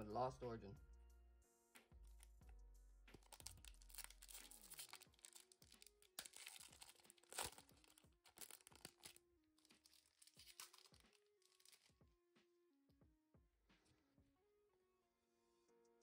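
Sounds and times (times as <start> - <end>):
soft background music: 0.0 - 16.0
foil wrapper tearing and crinkling: 3.1 - 11.9.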